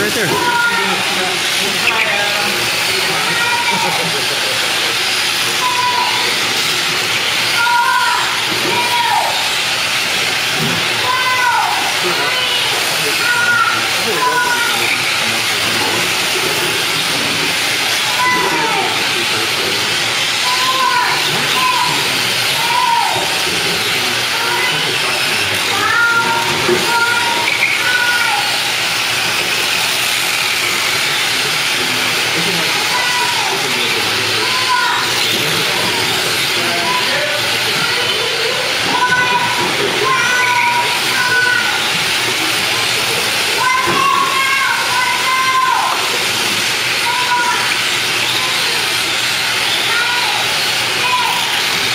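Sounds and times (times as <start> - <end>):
motor whines sweeping down: 0.0 - 51.9
rc car motors hissing: 0.0 - 51.9.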